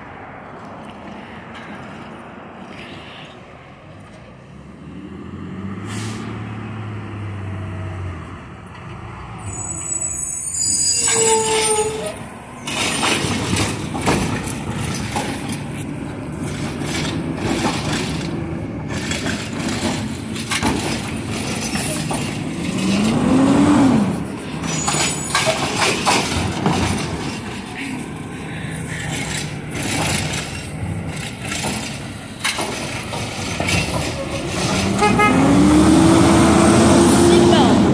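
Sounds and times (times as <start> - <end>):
high brake squeal: 9.4 - 12.8, 24.6 - 25.8
garbage truck engine revving: 12.7 - 27.4, 29.0 - 37.9.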